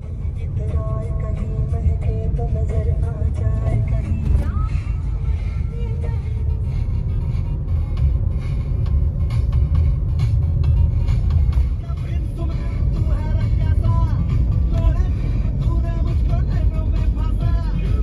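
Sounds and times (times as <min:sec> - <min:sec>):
car driving rumble from inside: 0:00.0 - 0:18.0
music playing: 0:00.0 - 0:18.0.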